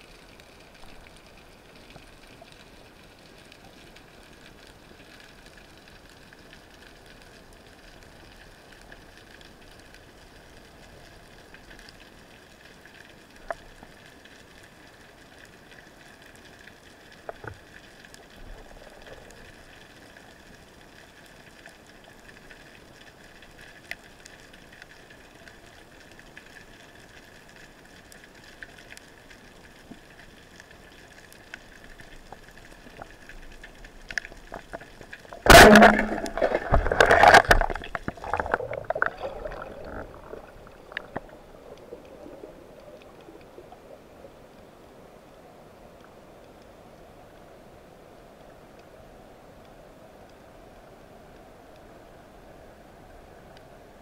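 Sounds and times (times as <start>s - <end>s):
underwater hiss and crackle: 0.0s - 54.0s.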